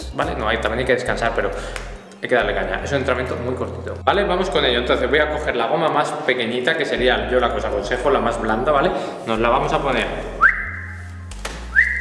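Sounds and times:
short rising whistles: 10.4s - 11.1s, 11.7s - 12.0s.

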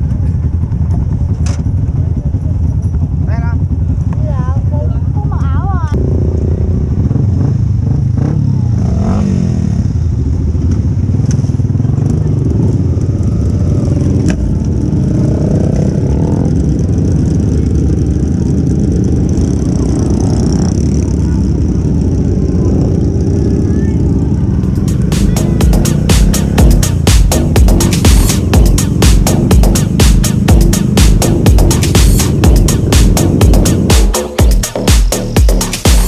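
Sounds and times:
motorcycle engines at low speed: 0.0s - 36.0s
voices: 1.8s - 6.0s, 15.6s - 34.4s
music with heavy beat: 24.7s - 36.0s.

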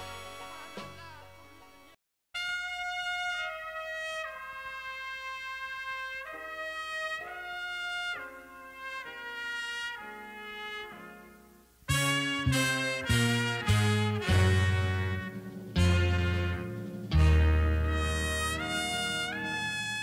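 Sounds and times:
slow horn melody: 0.0s - 1.7s, 2.4s - 20.0s
band with bass: 11.9s - 20.0s.

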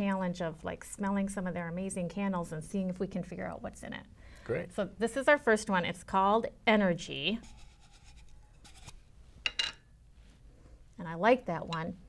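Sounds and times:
light rubbing of metal tin: 7.4s - 9.0s.

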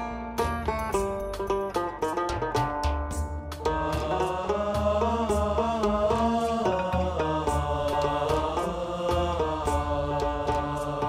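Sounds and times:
steady percussive beat: 0.0s - 11.0s
chant-like vocal melody: 3.5s - 11.0s.

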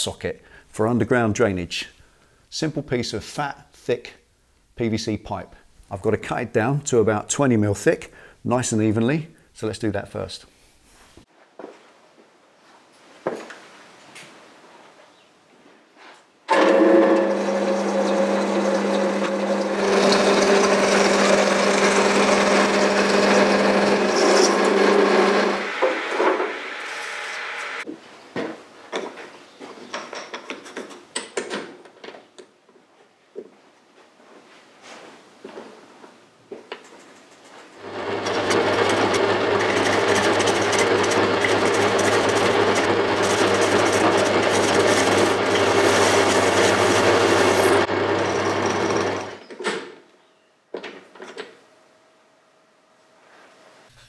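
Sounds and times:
bandsaw cutting plastic pipe: 16.5s - 27.8s, 37.8s - 49.4s
metal lathe running: 16.5s - 27.8s, 37.8s - 49.4s.

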